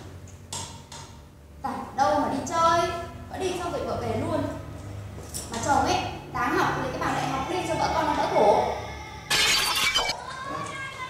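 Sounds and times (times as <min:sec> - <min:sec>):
glass shattering: 0:09.3 - 0:10.2.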